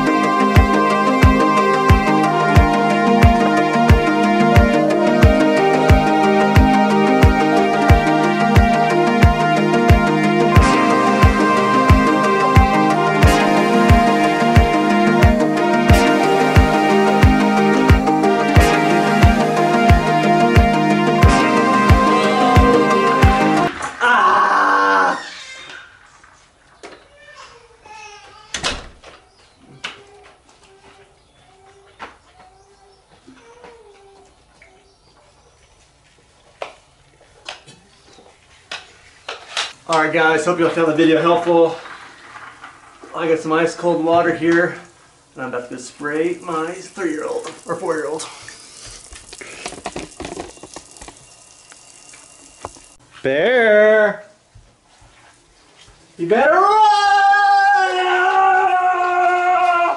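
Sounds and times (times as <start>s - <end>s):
man screaming: 24.0s - 25.6s, 56.4s - 59.9s
water hissing: 44.8s - 53.0s.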